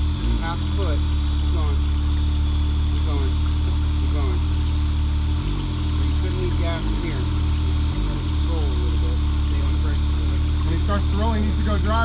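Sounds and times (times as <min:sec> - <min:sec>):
vehicle engine running low revs: 0:00.0 - 0:12.0.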